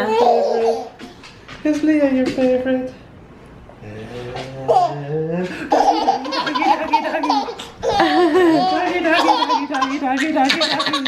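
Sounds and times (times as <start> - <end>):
baby laughing: 0.0 - 1.0, 4.7 - 11.0.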